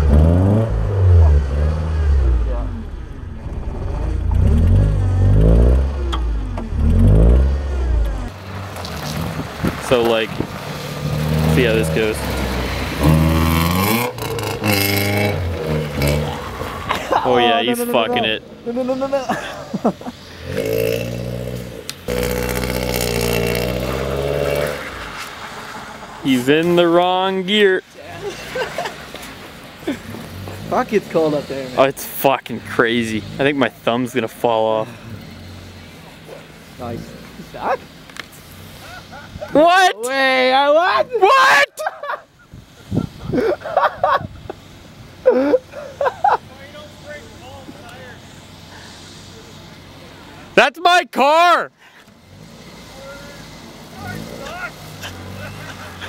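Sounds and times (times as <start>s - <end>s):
car engine at high revs: 0.0s - 19.1s, 19.7s - 26.8s, 52.1s - 56.0s.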